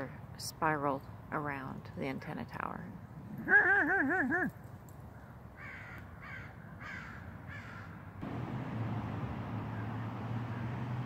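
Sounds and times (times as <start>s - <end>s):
crow cawing: 5.2s - 8.0s
low steady engine drone: 8.2s - 11.0s.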